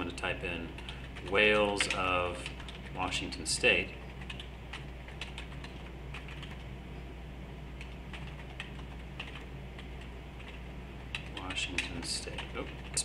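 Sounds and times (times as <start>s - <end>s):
low electrical hum: 0.0s - 13.0s
keyboard keys tapping: 0.8s - 2.9s, 4.2s - 6.7s, 7.8s - 13.0s.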